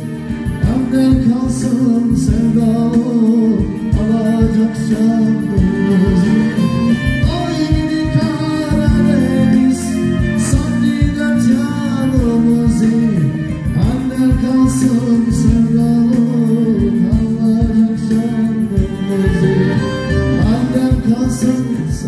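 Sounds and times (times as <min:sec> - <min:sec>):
keyboard: 0:00.0 - 0:22.0
man singing: 0:00.0 - 0:22.0
steady drum beat: 0:00.0 - 0:22.0.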